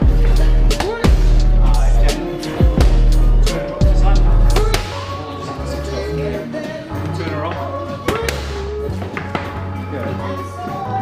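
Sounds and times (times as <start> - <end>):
background music with bass line: 0.0 - 11.0.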